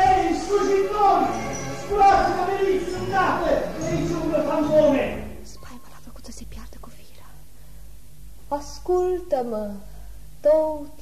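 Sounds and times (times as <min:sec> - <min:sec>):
steady low hum: 0:00.0 - 0:11.0
person whispering: 0:05.4 - 0:07.5.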